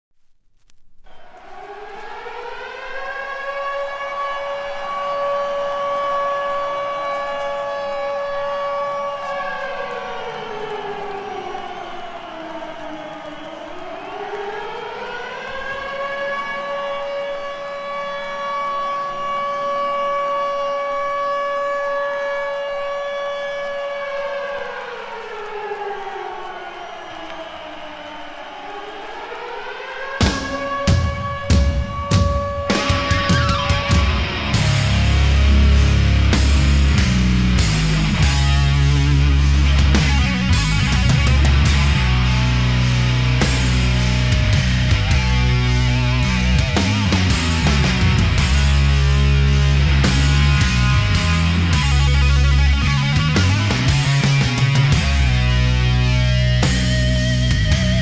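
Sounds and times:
air-raid siren wailing: 0:01.1 - 0:58.0.

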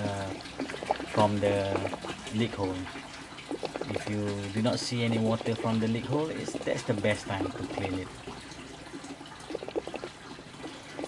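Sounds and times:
water gurgles: 0:00.0 - 0:11.0
water trickling through gravel: 0:00.0 - 0:11.0.

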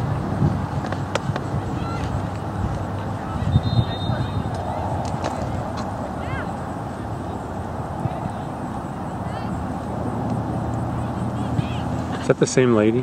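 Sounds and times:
steady low rumble: 0:00.0 - 0:12.1
distant shouts: 0:01.4 - 0:12.3.

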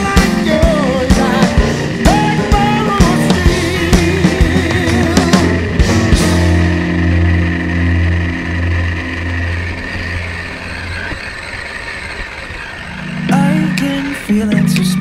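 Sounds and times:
low guitar chord: 0:00.0 - 0:11.2
rock music: 0:00.0 - 0:15.0.

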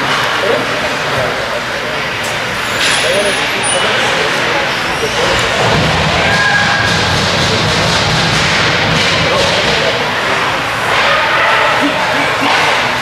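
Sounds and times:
spectators talking and calling out: 0:00.0 - 0:13.0.

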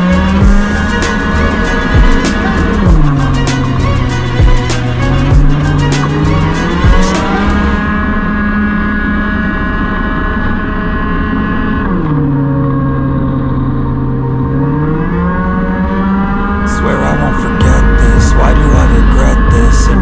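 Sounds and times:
scooter engine at high revs: 0:00.0 - 0:20.0.

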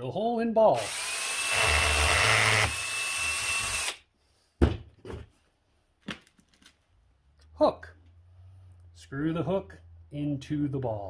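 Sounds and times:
cordless drill motor whine: 0:00.8 - 0:04.0.

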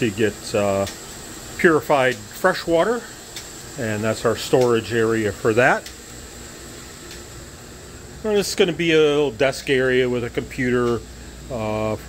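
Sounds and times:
faint fan hum: 0:00.0 - 0:12.0
room hiss: 0:00.0 - 0:12.0.

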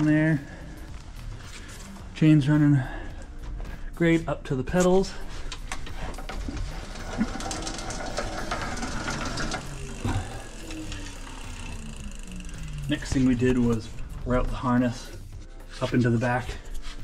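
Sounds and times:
bicycle chain and hub whirring: 0:05.1 - 0:15.3.

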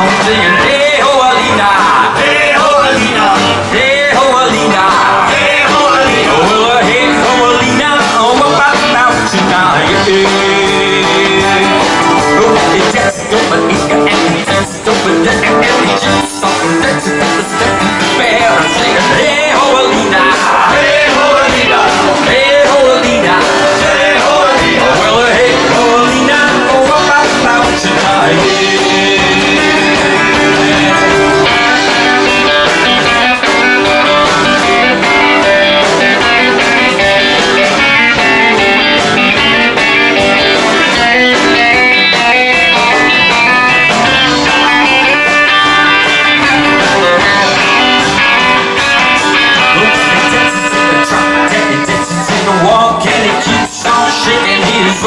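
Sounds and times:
drums and cymbals: 0:00.0 - 0:55.0
electric guitar lead: 0:00.0 - 0:55.0.

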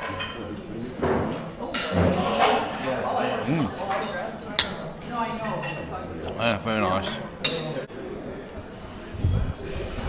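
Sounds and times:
cutlery clinking on a plate: 0:00.0 - 0:02.7, 0:03.8 - 0:06.0, 0:07.1 - 0:07.9.

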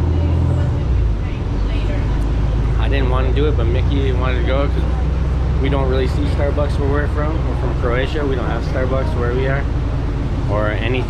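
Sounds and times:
bus engine low drone: 0:00.0 - 0:11.0.

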